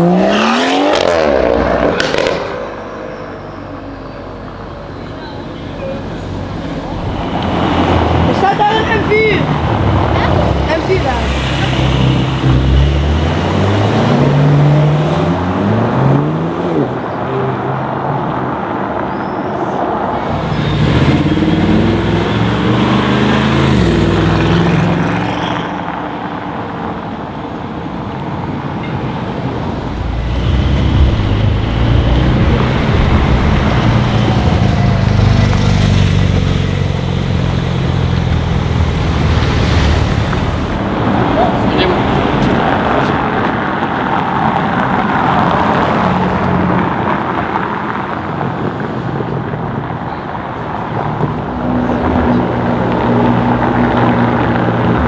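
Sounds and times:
cars accelerating past: 0.0s - 3.8s, 20.2s - 27.0s, 29.5s - 55.0s.

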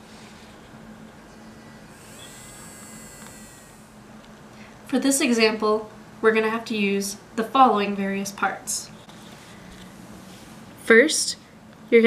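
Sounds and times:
small electric motor whine: 0.0s - 4.8s.

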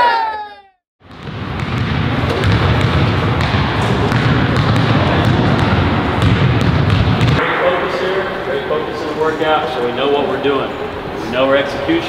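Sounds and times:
basketballs bouncing on gym floor: 1.0s - 7.4s.

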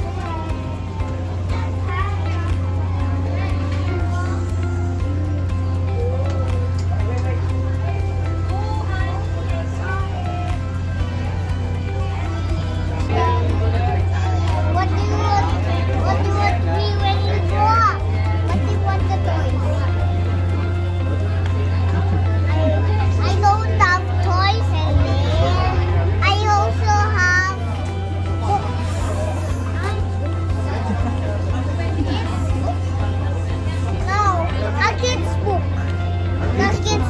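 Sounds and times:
background music: 0.0s - 37.0s
children chattering and exclaiming: 0.0s - 37.0s
steady low hum: 0.0s - 37.0s.

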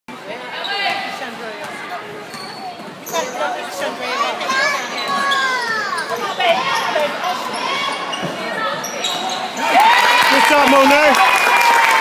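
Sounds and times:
spectators talking and calling out: 0.1s - 11.2s.

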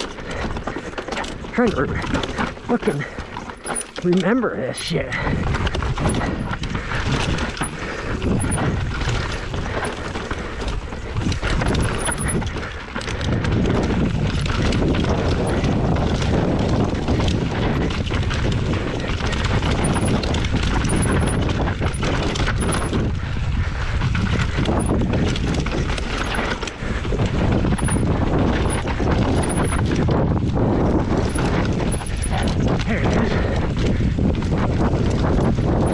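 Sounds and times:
bike rattling: 0.0s - 35.9s
bike tyres over dirt and stones: 0.0s - 35.9s.

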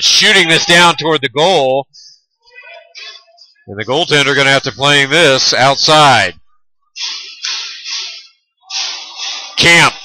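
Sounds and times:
arena crowd and play noise: 0.0s - 10.0s.

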